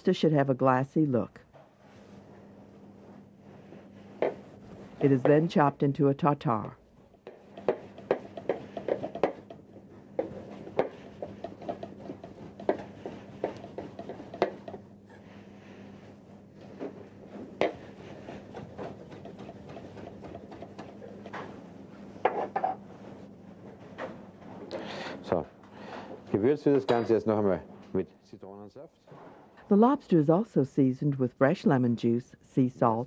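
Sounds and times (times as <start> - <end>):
knife chopping on cutting board: 7.2 - 14.8, 17.6 - 21.6.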